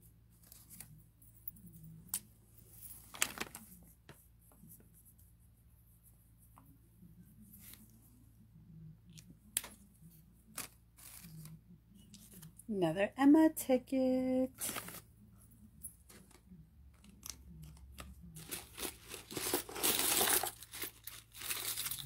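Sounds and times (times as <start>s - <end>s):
paper rustling: 2.7s - 4.9s, 10.4s - 11.6s, 14.5s - 15.1s, 17.0s - 22.0s
paper ripping: 10.5s - 11.5s, 14.6s - 15.0s, 18.4s - 22.0s.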